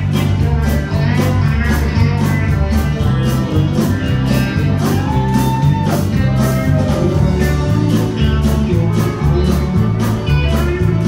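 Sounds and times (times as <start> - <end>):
drums with steady beat: 0.0 - 11.0
electric bass: 0.0 - 11.0
guitars: 0.0 - 11.0.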